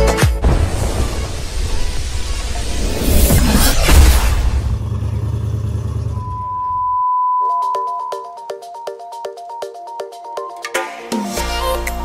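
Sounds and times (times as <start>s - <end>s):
electronic test-tone beep: 6.2s - 8.6s.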